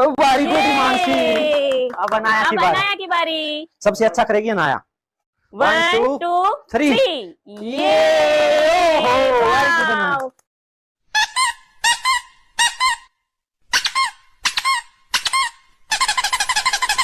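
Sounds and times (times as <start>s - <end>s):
high-pitched squeaks: 11.2s - 13.1s, 13.7s - 17.0s.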